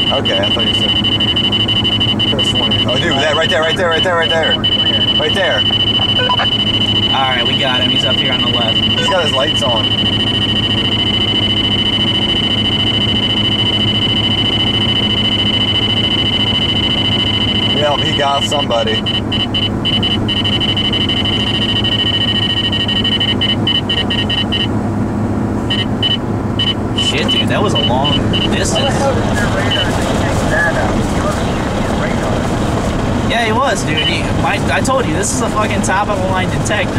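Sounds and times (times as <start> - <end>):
high-pitched radar detector alert: 0.0 - 24.7, 25.7 - 32.5
road and engine rumble: 0.0 - 36.9.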